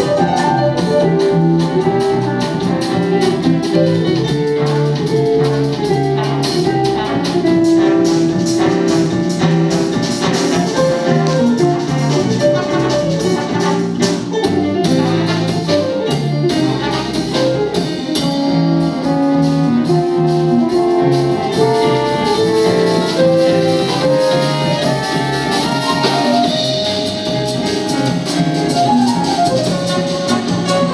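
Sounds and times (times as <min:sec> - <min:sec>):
drum kit: 0:00.0 - 0:30.9
electric guitar: 0:00.0 - 0:30.9
trumpet and trombone melody: 0:00.0 - 0:30.9
upright double bass: 0:00.0 - 0:30.9.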